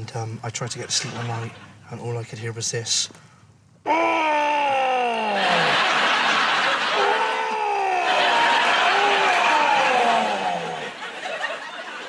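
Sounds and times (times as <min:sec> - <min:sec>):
man imitating ghostly moan: 0:03.9 - 0:05.9, 0:06.9 - 0:11.0.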